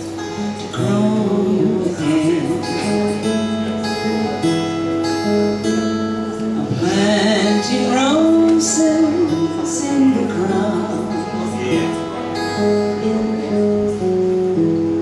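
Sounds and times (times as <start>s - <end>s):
acoustic guitar playing: 0.0s - 15.0s
woman singing: 0.4s - 4.7s, 6.5s - 11.6s.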